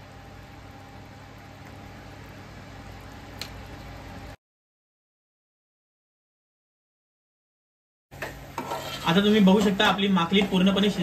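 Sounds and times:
metal ladle scraping pot: 0:08.6 - 0:09.8.

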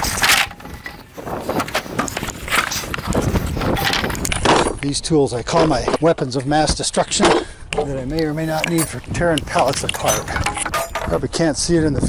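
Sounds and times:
wooden pallets knocking and scraping: 0:00.0 - 0:04.7, 0:08.4 - 0:11.2.

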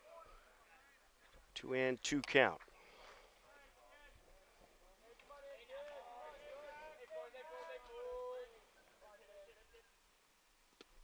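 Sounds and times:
faint distant voices: 0:00.0 - 0:10.3.

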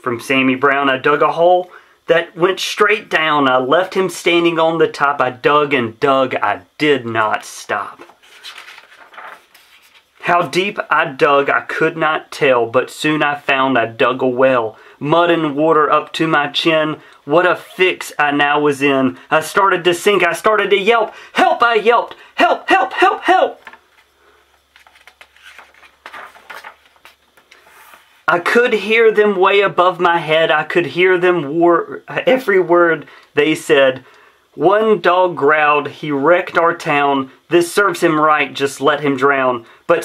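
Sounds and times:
book page turning: 0:08.0 - 0:10.2, 0:23.6 - 0:28.2.

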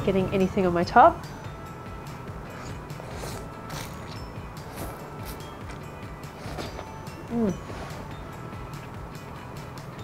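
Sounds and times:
quiet background music: 0:00.0 - 0:10.0
noodles being slurped: 0:02.5 - 0:05.5.

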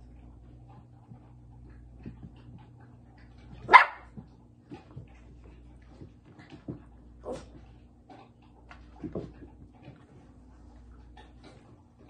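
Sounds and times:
puppy barking: 0:03.6 - 0:04.2.

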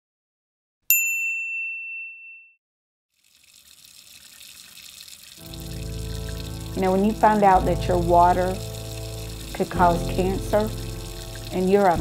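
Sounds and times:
tap water running into sink: 0:03.2 - 0:12.0
low music drone: 0:05.5 - 0:12.0.

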